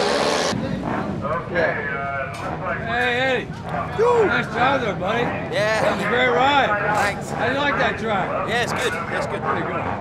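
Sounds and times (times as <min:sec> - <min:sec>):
indistinct voices talking: 0:00.0 - 0:10.0.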